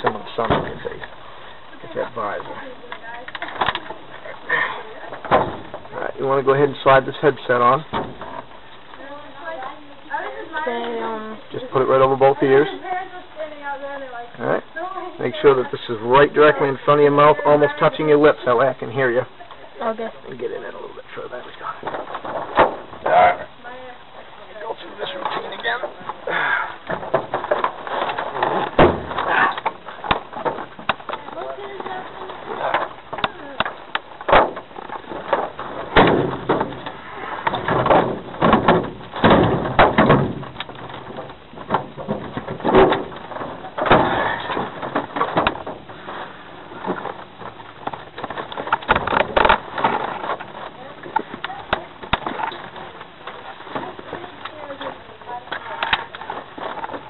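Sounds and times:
indistinct voices: 22.9 - 27.3.

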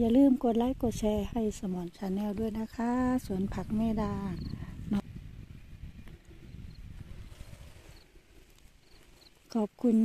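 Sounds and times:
woman's voice: 0.0 - 5.0, 9.5 - 10.0
wind buffeting microphone: 0.0 - 10.0.

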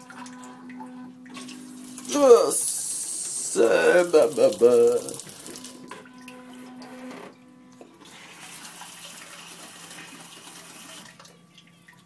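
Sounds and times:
low electric hum: 0.0 - 12.0
toilet nozzle water spraying: 1.3 - 5.8.

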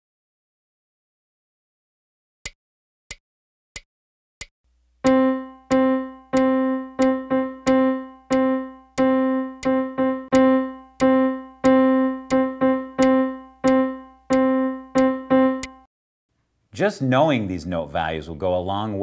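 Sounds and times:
piano note repeated rhythmically: 5.0 - 15.9.

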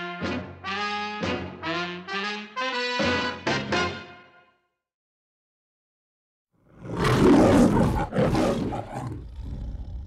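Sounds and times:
lion roaring: 6.7 - 10.0.

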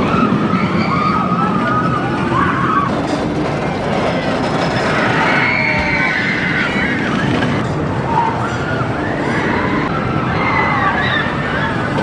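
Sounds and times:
riders screaming: 0.0 - 3.1, 4.8 - 12.0
roller coaster rumbling on track: 0.0 - 12.0.

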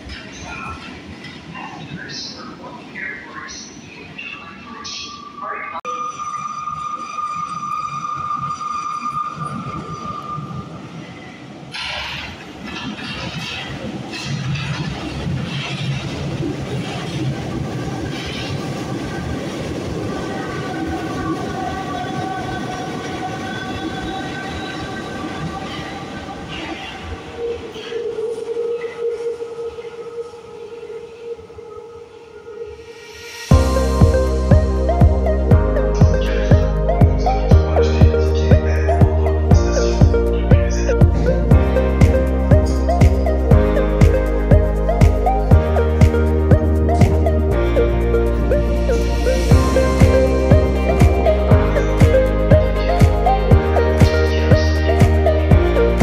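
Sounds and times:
train wheel and rail rumble: 0.0 - 56.0
steady high tone: 4.4 - 11.6, 20.2 - 56.0
lower steady tone: 32.4 - 56.0.

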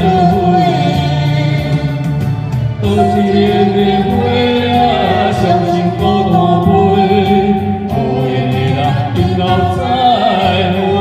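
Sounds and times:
woman and man singing duet: 0.0 - 2.2, 2.8 - 11.0
karaoke backing track: 0.0 - 11.0.

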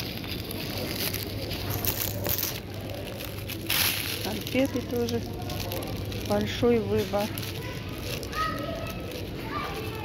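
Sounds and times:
indistinct shoppers' voices: 0.0 - 10.0.

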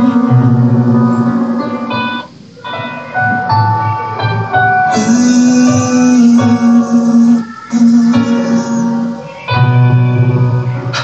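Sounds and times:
guitar-backed music: 0.0 - 11.0
long steady held note: 0.0 - 11.0.

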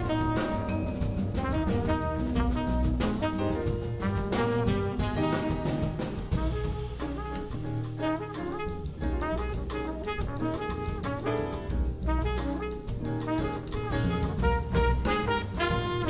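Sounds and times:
drum kit: 0.0 - 16.0
trumpet and saxophone melody: 0.0 - 16.0
upright bass: 0.0 - 16.0.

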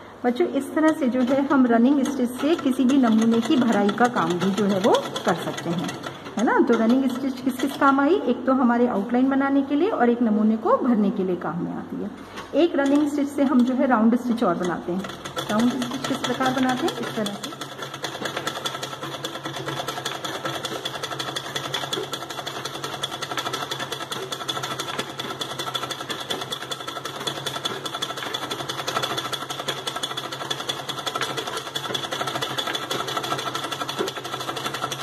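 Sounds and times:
sewing machine stitching: 0.8 - 8.2, 12.6 - 35.0.

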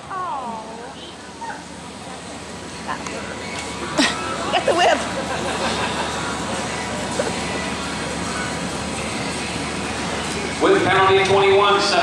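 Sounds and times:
indoor arena rushing noise: 0.0 - 12.0.

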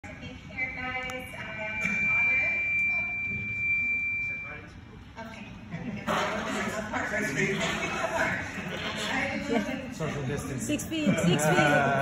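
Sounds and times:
steady high-pitched tone: 0.5 - 4.8.

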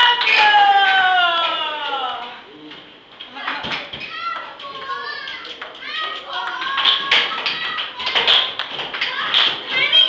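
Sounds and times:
children chattering: 3.3 - 10.0
ping-pong ball clicking: 4.3 - 9.2.

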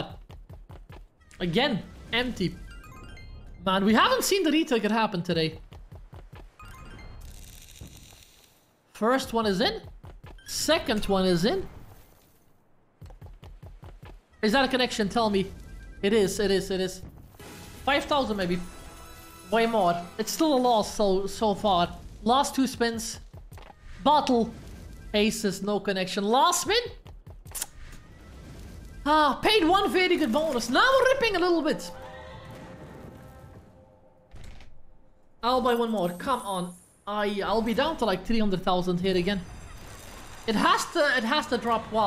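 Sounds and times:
faint game music: 0.0 - 42.0.

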